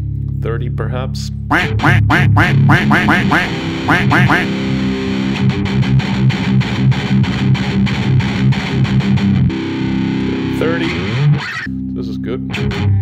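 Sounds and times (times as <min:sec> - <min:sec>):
distorted electric guitar riff: 0:01.5 - 0:11.9, 0:12.5 - 0:13.0.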